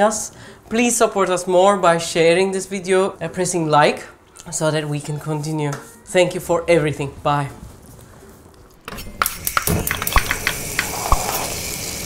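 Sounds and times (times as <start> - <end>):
hissing rush: 10.4 - 12.0.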